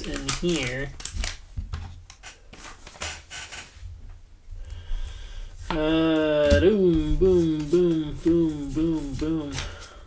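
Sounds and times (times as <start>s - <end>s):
wrapper crinkling and tearing: 0.0s - 1.5s
cards rustling: 0.0s - 3.0s, 5.6s - 10.0s.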